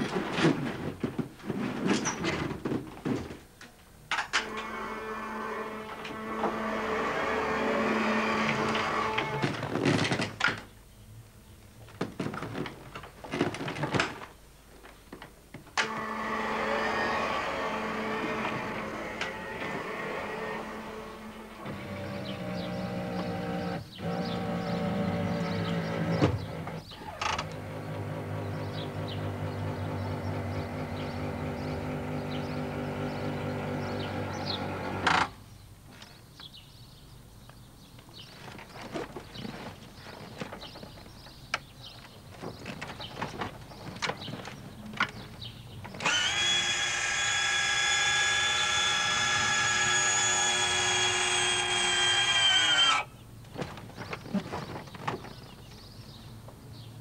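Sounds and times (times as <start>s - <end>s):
wheelchair motors whirring: 4.4s - 9.7s, 15.8s - 35.3s, 45.9s - 53.1s.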